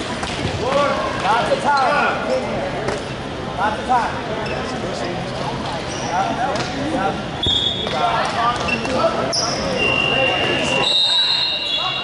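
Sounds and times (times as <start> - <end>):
chatter of busy sports hall: 0.0 - 12.0.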